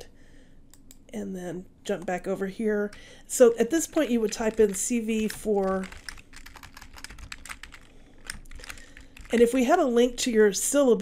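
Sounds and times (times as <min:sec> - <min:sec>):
computer keyboard typing: 0:03.8 - 0:09.8.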